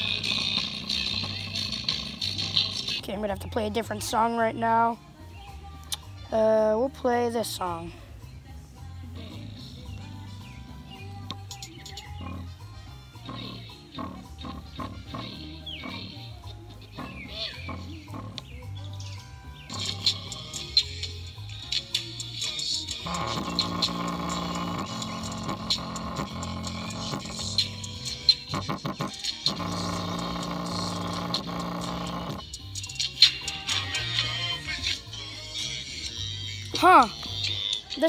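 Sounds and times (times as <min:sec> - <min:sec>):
bass-boosted electronic music: 0:00.0 - 0:38.0.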